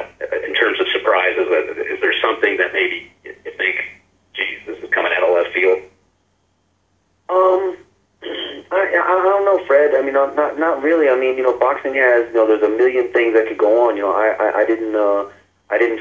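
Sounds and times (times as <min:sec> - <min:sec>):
person speaking over telephone line: 0:00.0 - 0:05.9, 0:07.3 - 0:16.0.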